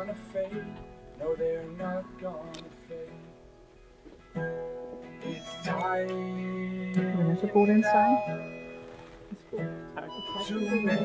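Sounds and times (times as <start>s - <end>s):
strummed acoustic guitar chord: 0.0s - 11.0s
person singing: 5.2s - 8.5s.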